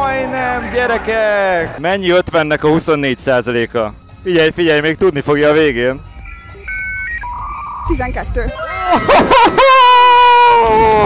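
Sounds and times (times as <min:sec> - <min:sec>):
electronic beeping tune: 0:06.2 - 0:08.9.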